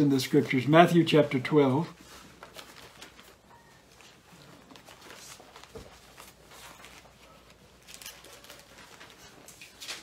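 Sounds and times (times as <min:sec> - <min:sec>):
paper crinkles: 0:00.0 - 0:10.0
thin pages turning: 0:00.0 - 0:10.0.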